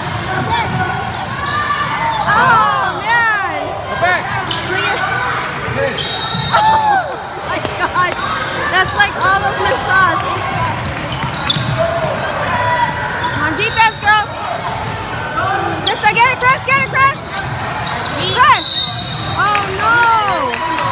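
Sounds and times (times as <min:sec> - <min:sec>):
shoes squeaking on hardwood court: 0:07.3 - 0:20.0.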